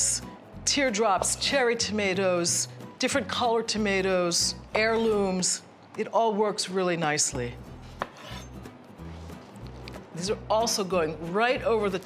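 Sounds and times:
soft background music: 0.0 - 12.0
knife cutting on wooden board: 7.8 - 8.6.

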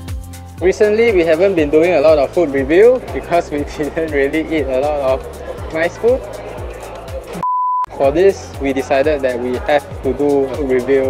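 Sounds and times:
background music with steady beat: 0.0 - 11.0
electronic beep: 7.4 - 7.9.

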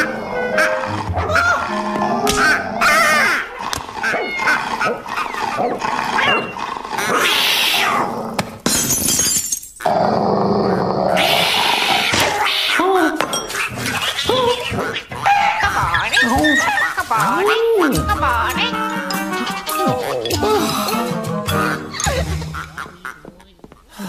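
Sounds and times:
cartoon soundtrack music: 0.0 - 4.3, 15.7 - 23.3
animal-like vocal noise: 0.0 - 8.4, 10.6 - 22.2.

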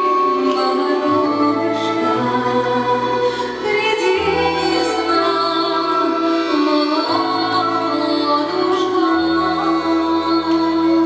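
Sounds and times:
folk instrument ensemble: 0.0 - 11.0
woman singing: 0.0 - 11.0.

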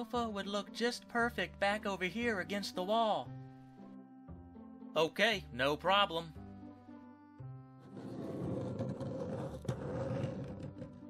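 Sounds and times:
wooden toy scraping on floor: 7.8 - 11.0.

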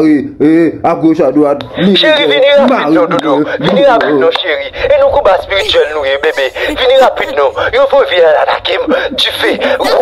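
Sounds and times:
person talking: 5.4 - 8.0, 9.3 - 10.0.

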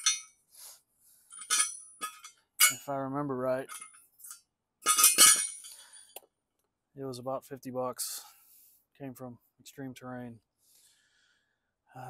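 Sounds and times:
metal hitch clanking: 0.0 - 0.3, 1.4 - 2.9, 3.6 - 4.0, 4.8 - 5.8
thin high metallic ringing: 1.3 - 2.9, 4.9 - 5.9.

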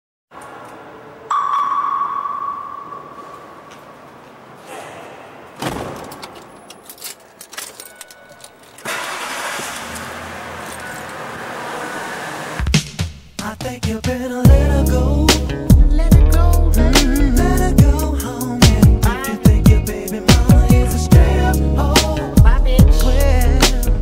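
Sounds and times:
ringing chime: 1.3 - 3.6
jangling keys: 6.2 - 8.9.

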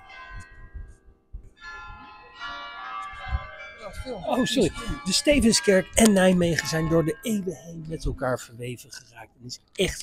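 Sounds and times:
church bells ringing: 0.0 - 9.0.

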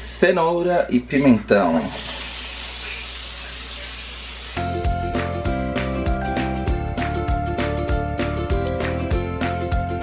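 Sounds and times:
vegetables sizzling in a wok: 1.9 - 4.8
background music with a beat: 4.6 - 10.0.

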